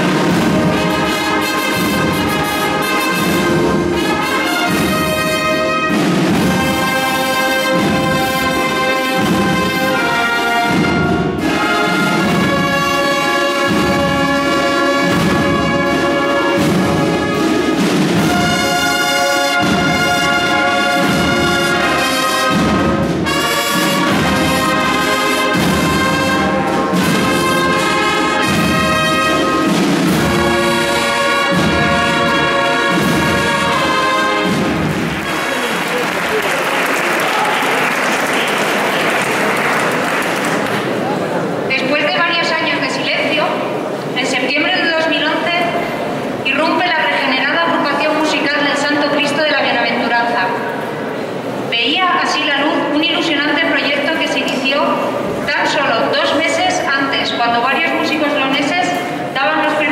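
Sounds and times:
brass band playing: 0:00.0 - 0:59.9
audience applause: 0:34.6 - 0:41.6.

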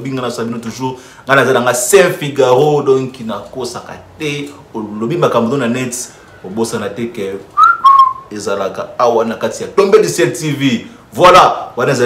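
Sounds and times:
man whistling: 0:07.6 - 0:08.3.

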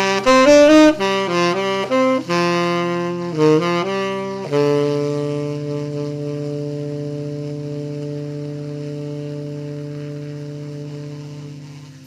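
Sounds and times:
tenor saxophone long low note: 0:00.0 - 0:12.0.

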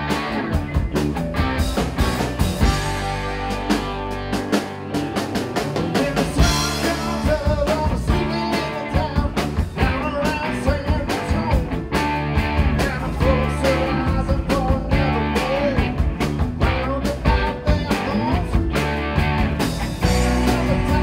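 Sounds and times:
drum kit beating: 0:00.0 - 0:21.0
electric guitar: 0:00.0 - 0:21.0.

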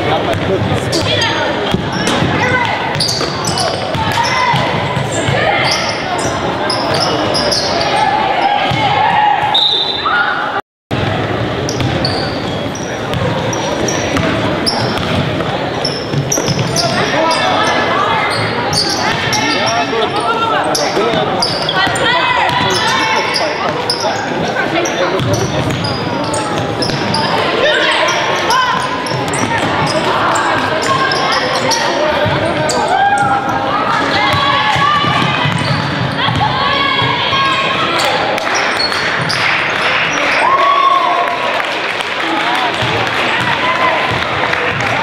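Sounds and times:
people calling out and chattering: 0:00.0 - 0:45.0
sneaker squeaks: 0:00.3 - 0:10.2, 0:11.6 - 0:40.4.

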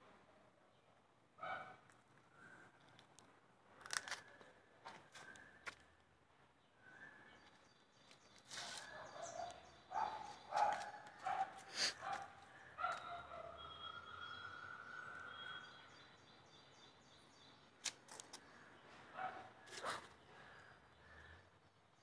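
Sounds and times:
faint outdoor ambience: 0:00.0 - 0:22.0
birds calling: 0:06.6 - 0:22.0.

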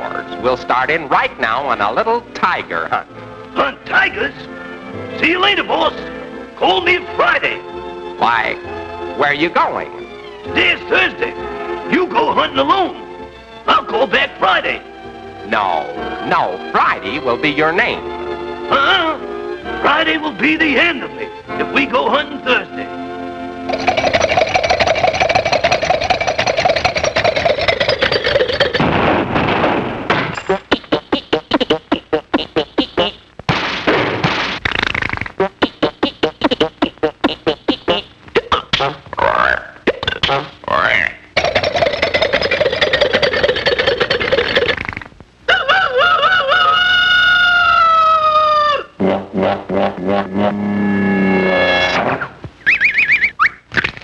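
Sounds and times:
short sputters: 0:23.7 - 0:28.9, 0:34.6 - 0:38.0, 0:41.4 - 0:45.2
cartoon putt-putting engine: 0:23.7 - 0:29.1, 0:30.4 - 0:33.3, 0:34.6 - 0:45.1, 0:49.0 - 0:54.0
cartoon car engine putt-putt: 0:30.1 - 0:40.6
warbling falling tone: 0:49.4 - 0:53.6.

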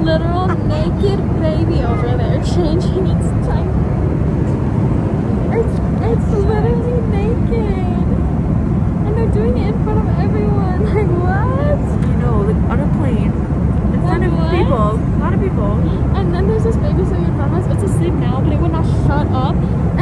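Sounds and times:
indistinct voices: 0:00.0 - 0:20.0
vehicle cabin rumble: 0:00.0 - 0:20.0.

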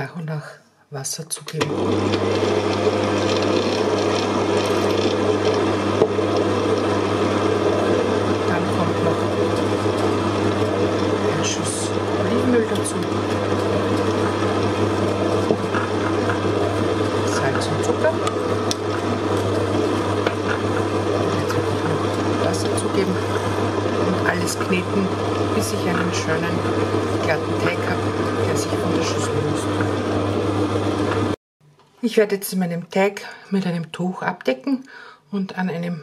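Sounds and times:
stand mixer motor hum: 0:01.6 - 0:31.4.

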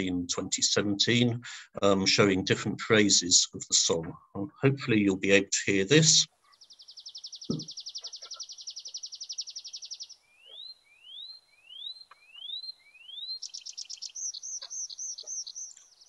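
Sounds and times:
bird song with trill: 0:06.3 - 0:16.0.

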